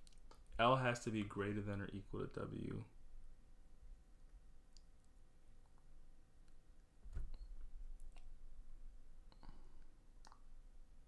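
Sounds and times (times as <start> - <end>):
faint clicks and taps: 0.0 - 0.6.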